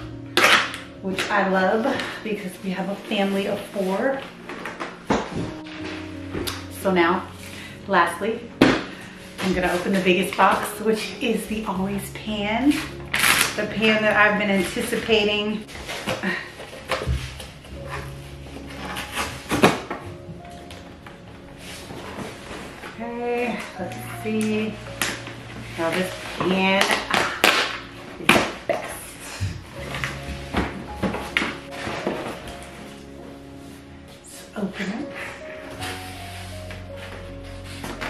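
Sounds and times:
background music with held notes: 0.0s - 38.0s.

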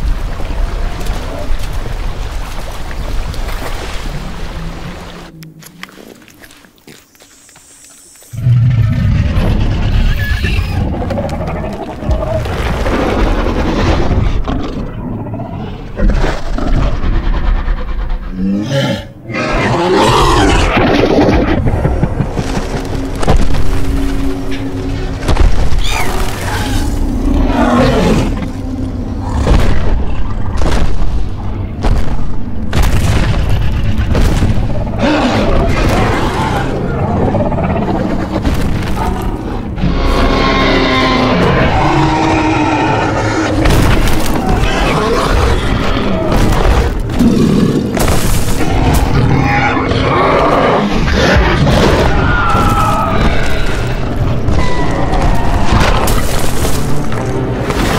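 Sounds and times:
dinosaur roar: 8.3s - 21.8s, 26.1s - 29.5s, 34.8s - 48.0s, 48.6s - 56.4s
low rumble: 20.2s - 57.8s.

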